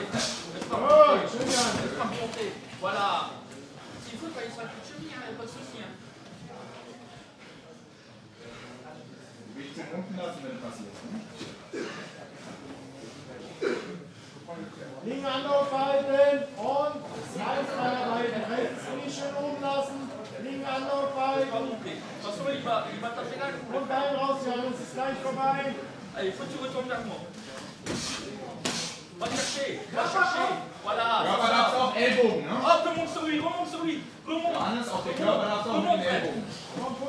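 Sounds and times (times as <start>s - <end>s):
voices in a hall: 0.0s - 37.0s.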